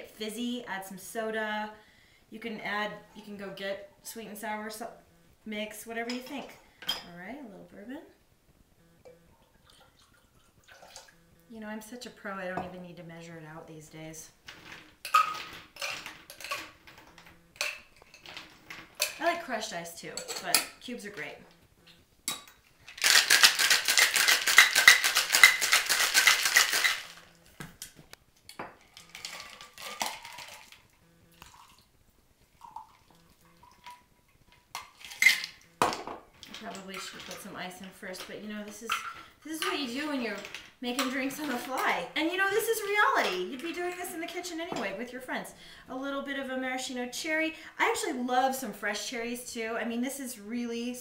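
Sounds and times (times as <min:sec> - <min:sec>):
liquid pouring into a shaker: 0:09.4 - 0:11.1, 0:23.0 - 0:27.2, 0:28.9 - 0:31.9, 0:32.6 - 0:34.0
shaker clinks and handling: 0:22.8 - 0:27.4.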